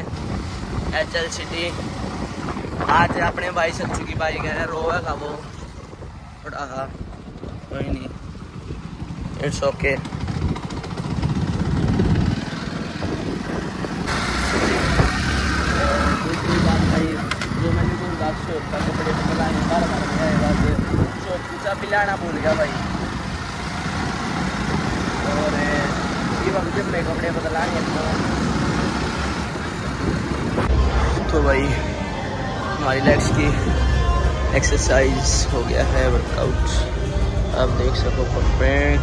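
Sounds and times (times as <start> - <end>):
wind noise on microphone: 0.0 - 39.0
motorcycle engine running: 4.5 - 39.0.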